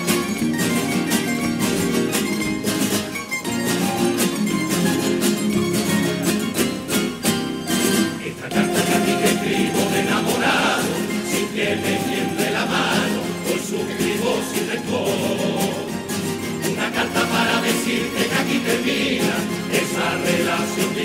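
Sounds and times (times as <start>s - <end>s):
guitars strumming quickly: 0.0s - 21.0s.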